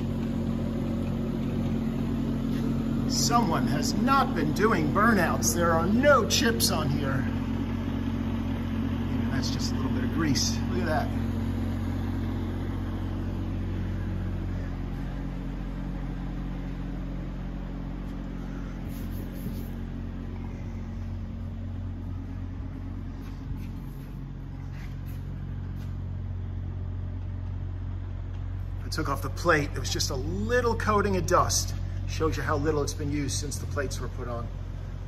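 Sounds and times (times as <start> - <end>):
machinery humming: 0.0 - 35.0.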